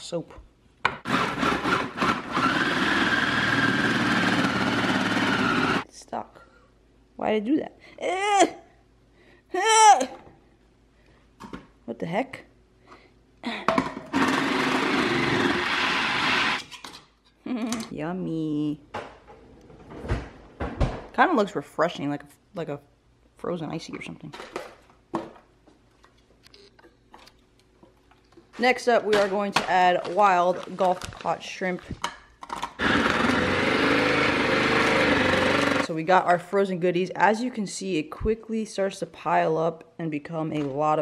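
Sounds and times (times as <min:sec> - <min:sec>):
food processor chopping frozen fish: 0:00.9 - 0:05.8, 0:14.0 - 0:16.8, 0:32.6 - 0:35.9.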